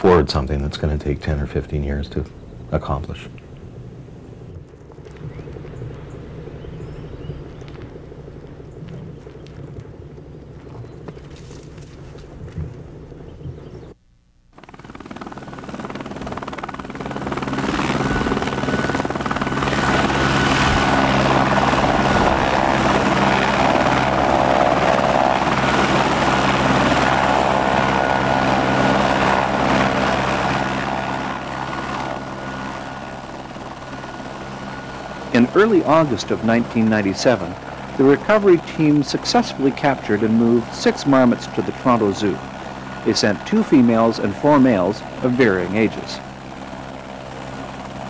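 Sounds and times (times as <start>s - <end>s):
helicopter rotor and engine drone: 0.0s - 48.0s.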